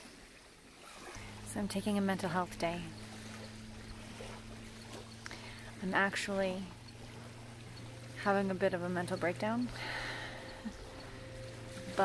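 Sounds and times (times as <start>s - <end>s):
faint outdoor hiss: 0.0s - 12.0s
steady low hum: 1.1s - 12.0s.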